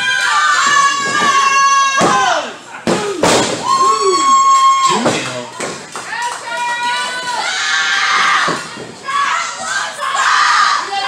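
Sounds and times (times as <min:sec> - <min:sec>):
crowd high-pitched shout: 0:06.2 - 0:11.0.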